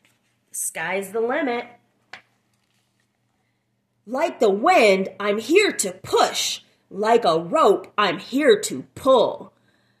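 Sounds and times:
paper page flapping: 2.1 - 3.1.

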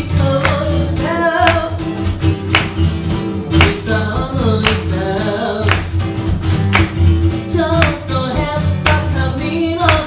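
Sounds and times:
man singing: 0.0 - 2.0, 3.4 - 6.0, 7.4 - 10.0
acoustic guitar strumming: 0.0 - 10.0.

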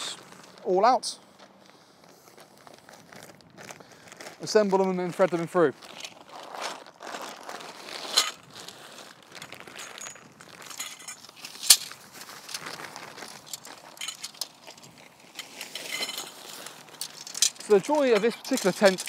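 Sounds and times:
tent poles clinking and rattling: 0.1 - 19.0.

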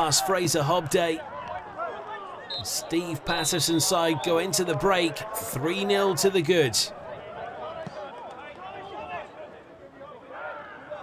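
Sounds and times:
voices overlapping: 2.5 - 7.9.

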